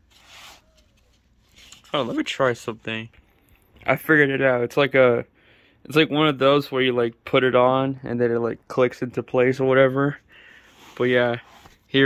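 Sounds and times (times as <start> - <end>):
cardboard packaging rustling: 0.0 - 2.4.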